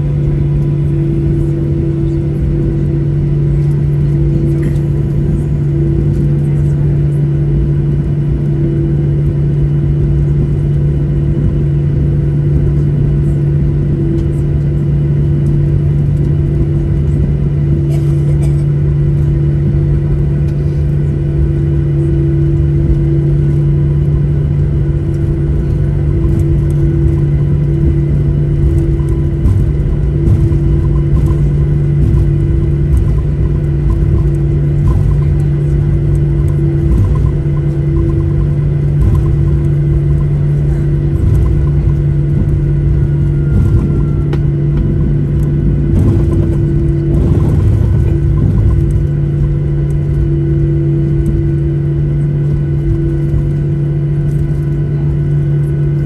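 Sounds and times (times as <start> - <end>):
jet engines idling in cabin: 0.0 - 56.0.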